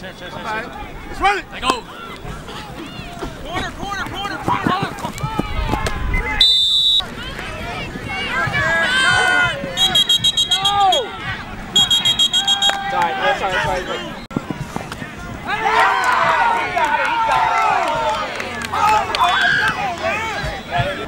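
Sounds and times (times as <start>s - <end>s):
players and crowd shouting: 0.0s - 21.0s
referee whistle blasts: 6.2s - 7.0s, 9.8s - 11.1s, 11.7s - 13.0s.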